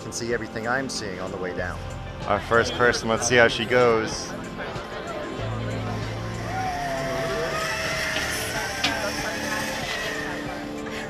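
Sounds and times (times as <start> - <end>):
zip-line trolley whirring on cable: 5.4 - 11.0.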